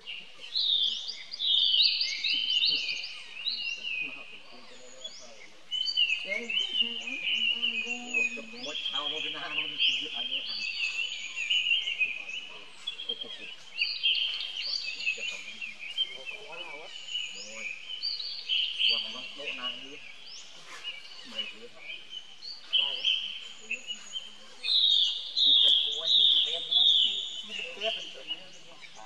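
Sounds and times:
faint voices: 0.0 - 29.0
small birds chirping: 0.0 - 29.0.

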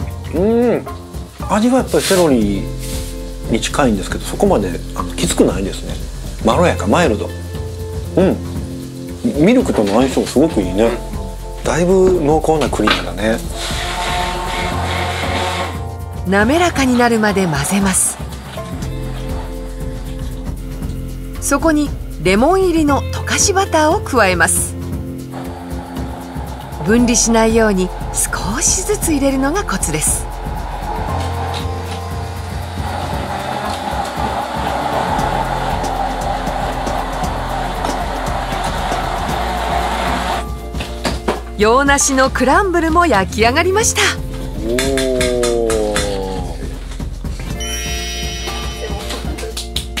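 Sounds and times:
background music: 0.0 - 50.0
immersion blender running in bowl: 13.6 - 15.9, 31.8 - 40.5.

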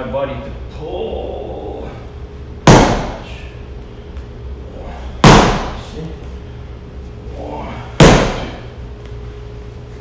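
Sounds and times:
punches smacking impact pad: 2.6 - 3.4, 5.2 - 5.9, 8.0 - 8.6.

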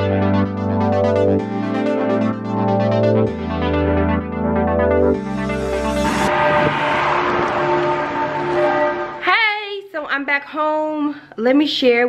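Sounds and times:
steady rushing noise: 5.4 - 9.3.

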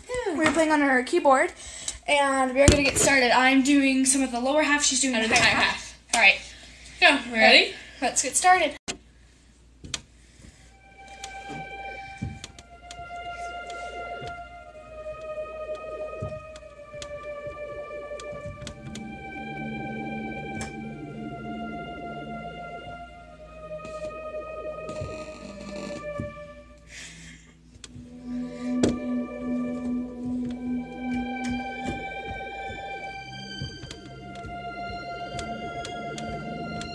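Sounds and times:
eerie synth tones: 10.8 - 36.9
electronic keyboard held notes: 10.8 - 36.9.

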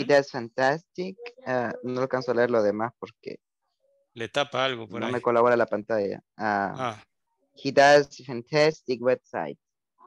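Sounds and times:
person speaking: 4.2 - 5.6, 6.6 - 7.0.

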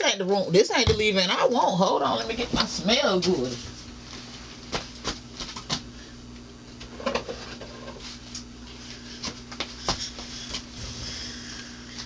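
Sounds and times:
washing machine humming: 0.0 - 12.0.

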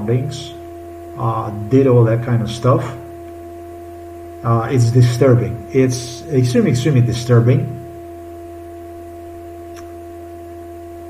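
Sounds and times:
steady higher tones: 0.0 - 9.9
steady low hum: 0.0 - 11.0.

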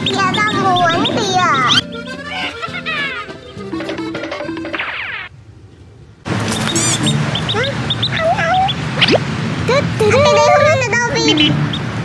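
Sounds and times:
duckling peeping: 0.0 - 5.3, 6.4 - 12.0.

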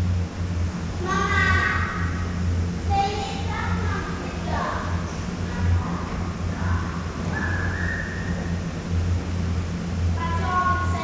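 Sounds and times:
conveyor belt lift humming: 0.0 - 11.0
person whistling a high note: 7.3 - 8.4.

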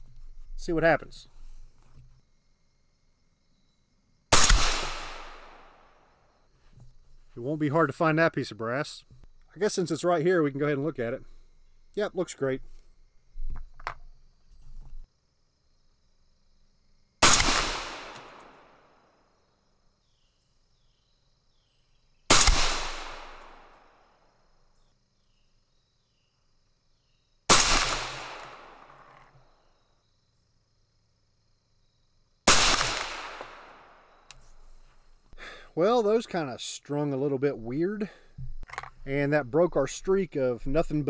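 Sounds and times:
gunshot echo: 4.3 - 5.9, 17.2 - 18.8, 22.3 - 23.8, 27.5 - 29.0, 32.5 - 34.0
suppressed rifle shots: 4.3 - 5.9, 17.2 - 18.7, 22.3 - 23.8, 27.5 - 29.1, 32.5 - 34.0.

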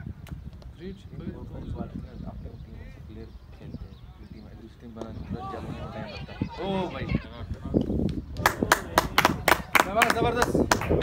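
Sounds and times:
men's voices: 0.7 - 11.0
people clapping: 8.4 - 11.0.

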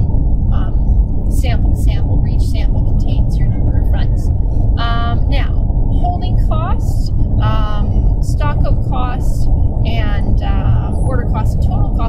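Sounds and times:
loud steady low rumble: 0.0 - 12.0
person speaking in high-pitched voice: 1.4 - 9.3.

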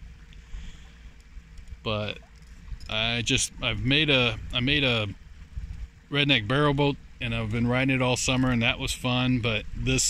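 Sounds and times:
wind and water rumble: 0.0 - 10.0.

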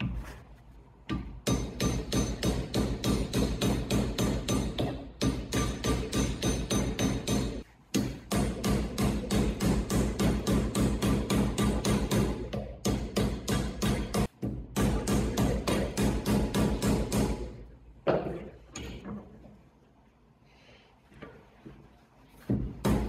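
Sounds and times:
mallet hammering steel disc: 1.1 - 17.5.

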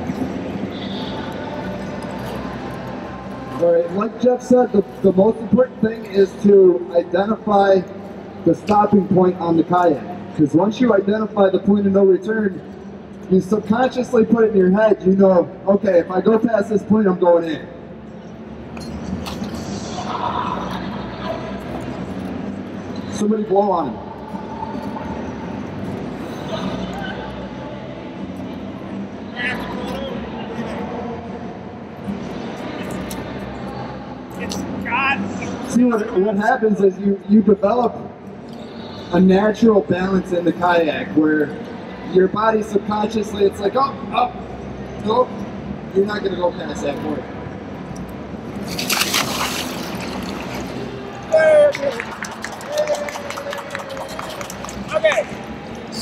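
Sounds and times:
constant low hum: 0.0 - 36.1
distant crowd chatter: 0.0 - 56.0
splash into pool: 48.7 - 50.6.

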